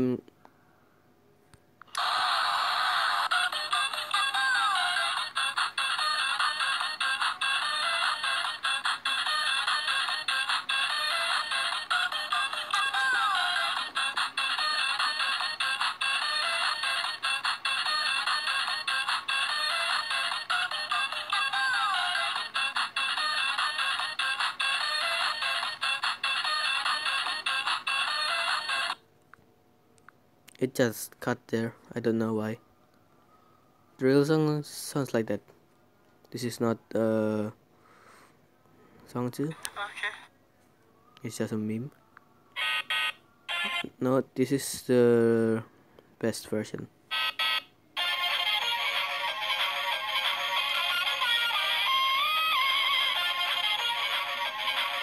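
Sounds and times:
tinny electronic toy song: 0:01.9 - 0:29.0, 0:42.6 - 0:43.9, 0:47.1 - 0:55.0.

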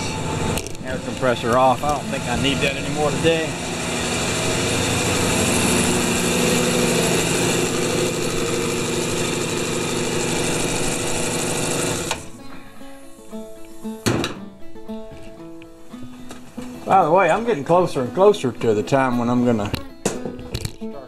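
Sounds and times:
air compressor running: 0:00.0 - 0:12.4.

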